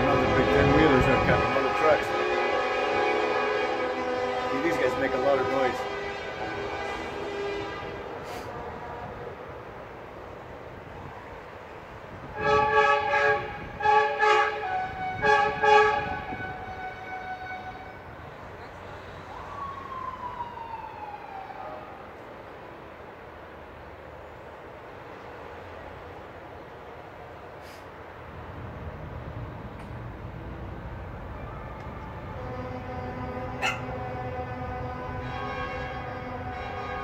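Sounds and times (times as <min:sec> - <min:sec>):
truck air horn blasts: 0:00.0 - 0:09.3, 0:12.3 - 0:18.0, 0:32.3 - 0:37.0
passing traffic: 0:00.0 - 0:37.0.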